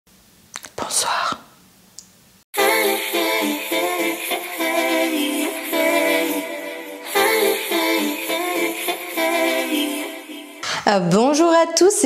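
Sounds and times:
lip clicks: 0:00.5 - 0:02.2
woman whispering: 0:00.6 - 0:01.5.

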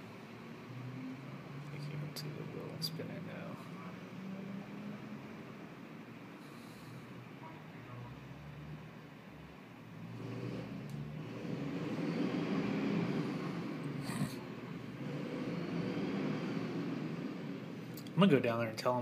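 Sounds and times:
bus engine revving: 0:00.0 - 0:07.4, 0:08.1 - 0:18.2.

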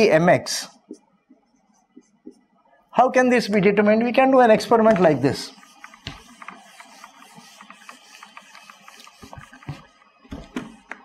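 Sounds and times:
marker squeaking on whiteboard: 0:04.5 - 0:11.0.

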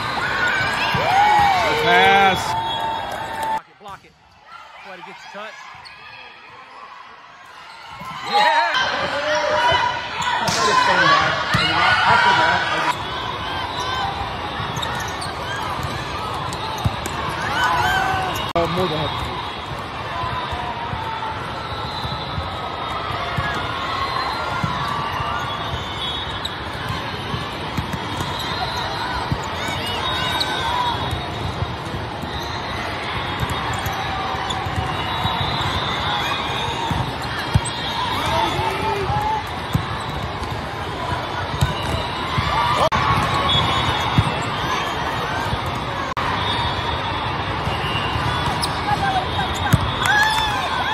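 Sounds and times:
voices in large hall: 0:00.0 - 0:50.9
shoes squeaking on court: 0:13.7 - 0:19.4, 0:23.3 - 0:46.6, 0:47.6 - 0:50.5.

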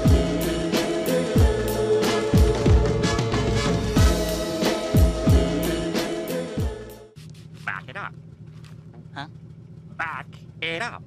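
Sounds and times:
cartoon boat engine idling: 0:07.4 - 0:11.0.

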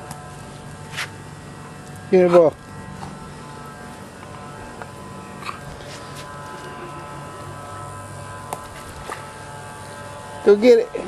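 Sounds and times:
low buzzing hum: 0:00.0 - 0:11.0.

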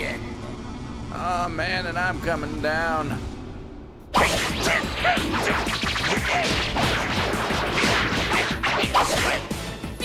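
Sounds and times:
action music: 0:04.1 - 0:10.0.

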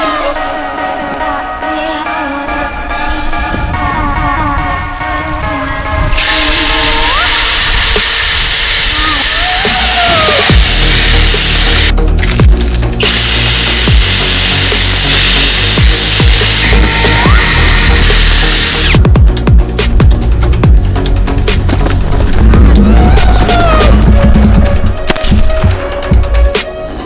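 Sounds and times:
power drill boring into ice: 0:06.1 - 0:11.9, 0:13.0 - 0:19.0
background music with a beat: 0:09.7 - 0:27.0.

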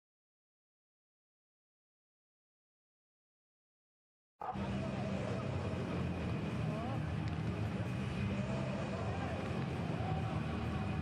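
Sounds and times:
steady low hum: 0:04.5 - 0:11.0.

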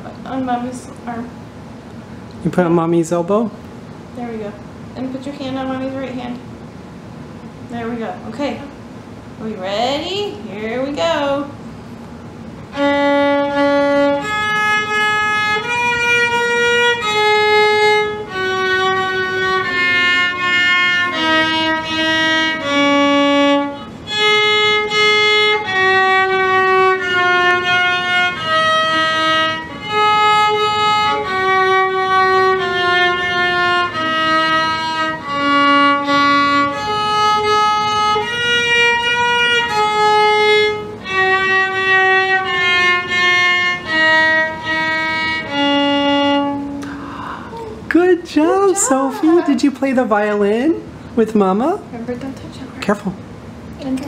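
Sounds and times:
violin playing slow melody: 0:12.7 - 0:47.3.

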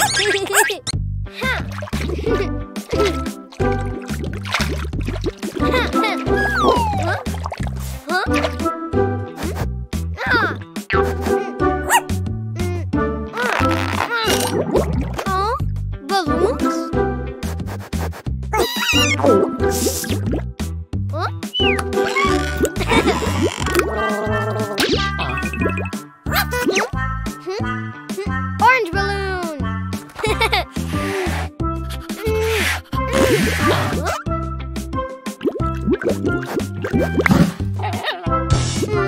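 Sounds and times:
cartoon puppy whimpering: 0:00.0 - 0:00.9, 0:06.2 - 0:07.2, 0:11.9 - 0:12.7, 0:18.6 - 0:19.4, 0:21.4 - 0:22.4, 0:37.8 - 0:38.4
cartoon music with steady beat: 0:00.0 - 0:39.0
drip-like plops: 0:02.9 - 0:08.6
squeaky rising glides: 0:21.5 - 0:22.6
short hissing sound effect: 0:30.9 - 0:31.5.

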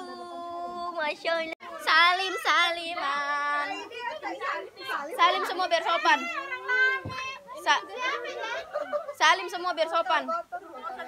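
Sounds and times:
children's voices: 0:00.0 - 0:11.0
people talking at once: 0:00.0 - 0:11.0.

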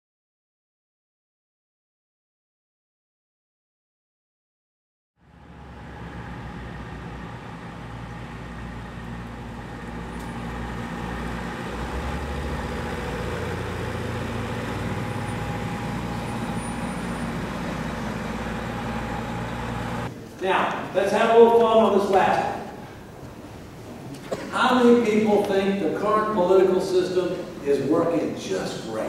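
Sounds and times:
bus engine hum with whine: 0:05.2 - 0:20.1.

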